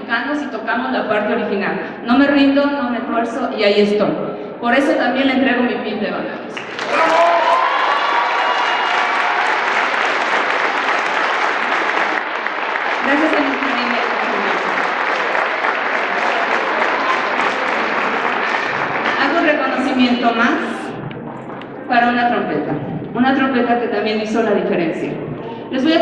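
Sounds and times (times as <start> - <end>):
audience applauding: 6.5 - 21.8.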